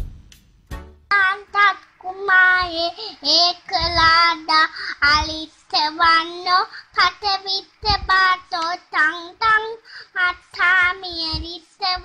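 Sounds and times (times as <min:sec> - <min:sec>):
young child singing: 0:01.1 - 0:12.0.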